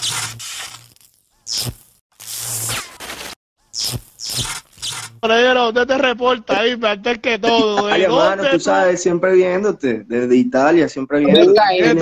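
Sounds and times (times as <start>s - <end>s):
burst of glitchy noise: 0.0s - 5.2s.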